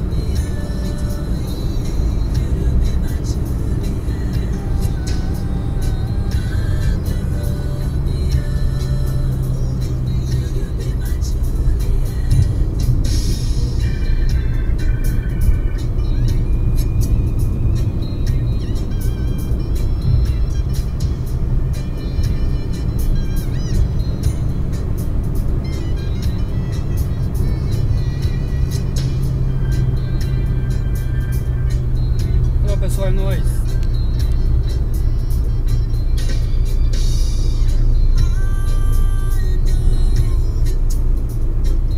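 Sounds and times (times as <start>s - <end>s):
car road and engine rumble: 0.0s - 41.9s
music playing: 0.0s - 41.9s.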